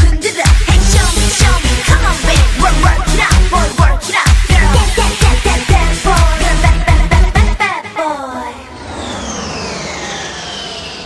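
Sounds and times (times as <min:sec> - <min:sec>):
rocket whoosh with falling whistle: 0:08.6 - 0:11.0.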